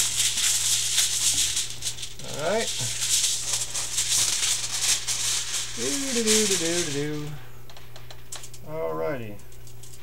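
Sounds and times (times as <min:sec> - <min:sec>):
aluminum foil crinkling: 0:00.0 - 0:07.5.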